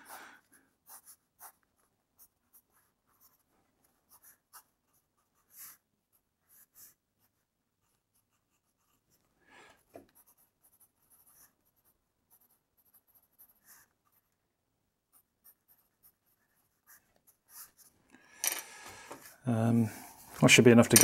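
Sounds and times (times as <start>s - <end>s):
pencil scratching on paper: 0.0s - 14.4s, 15.0s - 18.0s.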